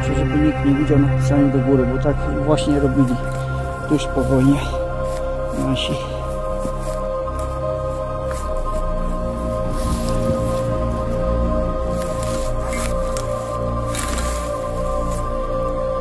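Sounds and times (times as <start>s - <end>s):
ambient chord music: 0.0s - 16.0s
dry grass rustling: 0.8s - 16.0s.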